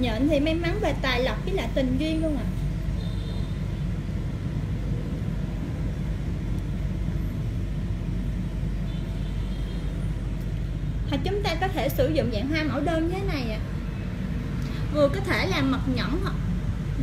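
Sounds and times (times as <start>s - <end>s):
low rumbling background noise: 0.0s - 17.0s.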